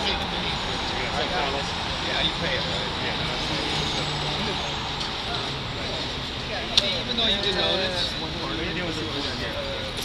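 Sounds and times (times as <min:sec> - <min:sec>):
faint voices: 0:00.0 - 0:10.0
heavy vehicle engine humming: 0:00.0 - 0:10.0
street traffic noise: 0:00.0 - 0:10.0.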